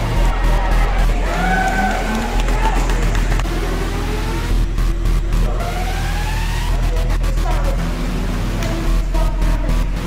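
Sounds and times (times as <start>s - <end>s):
trailer music with low bass: 0.0s - 10.0s.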